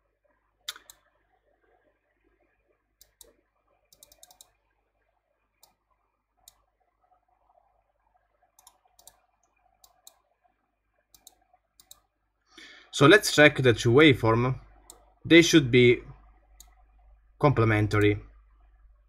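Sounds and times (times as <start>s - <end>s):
computer mouse clicking: 0.6s - 1.1s, 3.0s - 4.6s, 5.6s - 5.8s, 6.4s - 6.7s, 8.5s - 10.3s, 11.1s - 12.1s, 14.8s - 15.1s, 16.6s - 16.8s.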